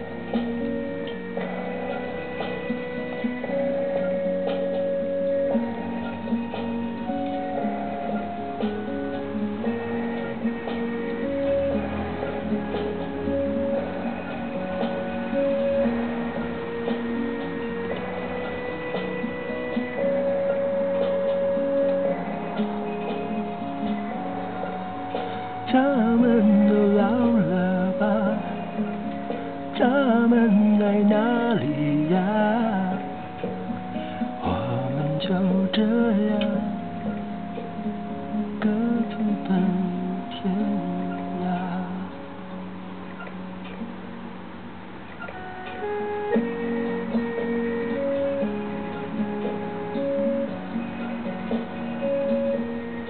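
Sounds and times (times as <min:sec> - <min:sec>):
slow folk ballad melody: 0:00.0 - 0:53.0.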